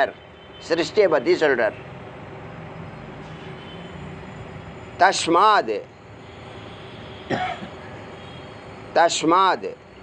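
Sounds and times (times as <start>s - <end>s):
person coughing: 7.3s - 7.9s.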